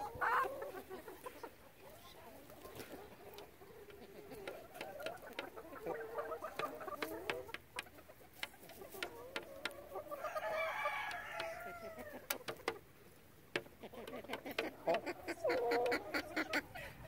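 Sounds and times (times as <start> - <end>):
chicken drawn-out call: 0.0 - 12.8, 13.7 - 17.0
chickens clucking: 0.0 - 17.0
beaks pecking on plastic tray: 2.8 - 12.9, 13.5 - 16.7.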